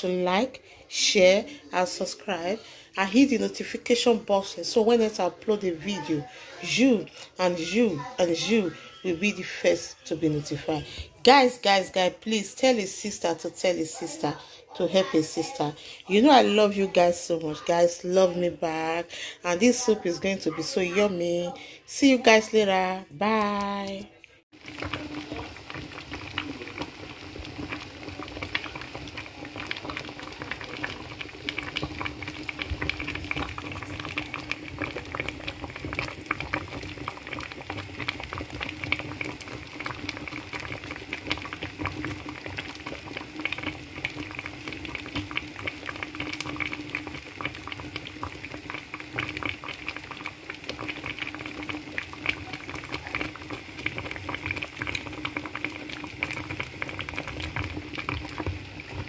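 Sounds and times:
broth bubbling at a boil: 0:24.5 - 0:59.0.

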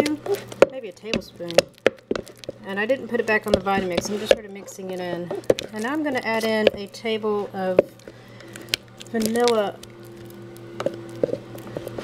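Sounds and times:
steady low hum: 0:00.0 - 0:12.0
utensil stirring thick paste: 0:00.0 - 0:12.0.

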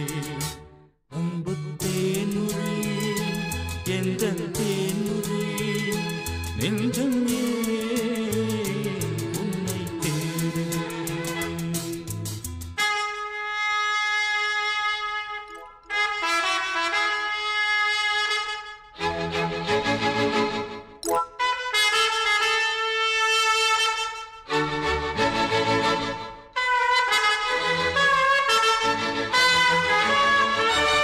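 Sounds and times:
bass line: 0:00.0 - 0:12.8
instrumental film music melody: 0:02.7 - 0:31.0.

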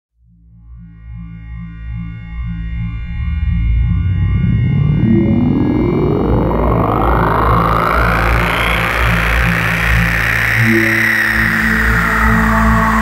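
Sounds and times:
sustained low bass notes: 0:01.6 - 0:13.0
rising synth sweep: 0:02.6 - 0:13.0
held synth tones: 0:04.1 - 0:13.0.

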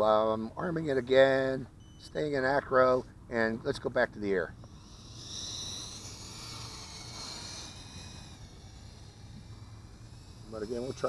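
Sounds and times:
drone motors whining: 0:04.4 - 0:11.0.

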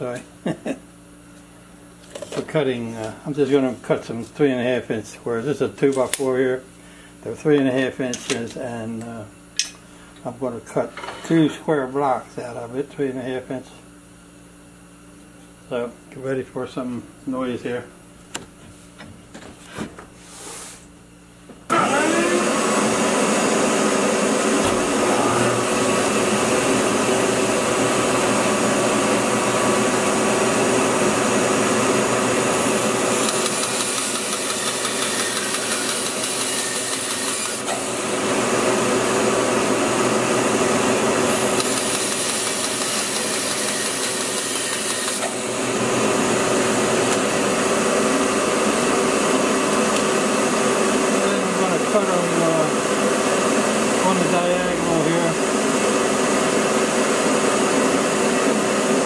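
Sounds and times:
bandsaw running: 0:21.7 - 0:56.9
saw blade cutting wood: 0:32.7 - 0:37.8, 0:41.3 - 0:45.4.

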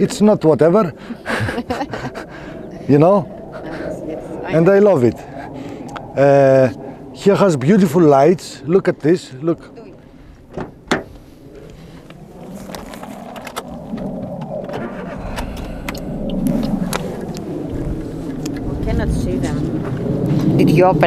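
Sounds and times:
car engine rumbling: 0:09.8 - 0:21.0.

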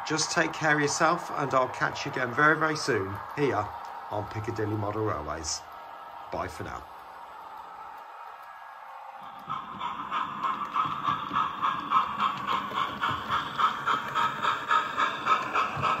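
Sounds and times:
model train motor whirring: 0:00.1 - 0:16.0.

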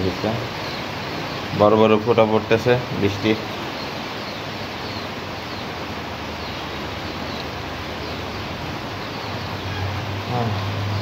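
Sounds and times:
rain falling: 0:00.0 - 0:11.0.

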